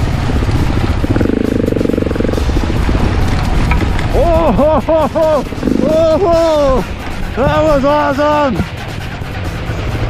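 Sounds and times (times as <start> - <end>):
off-road motorcycle engine: 0.0 - 10.0
wind rumble and jolts on microphone: 0.0 - 10.0.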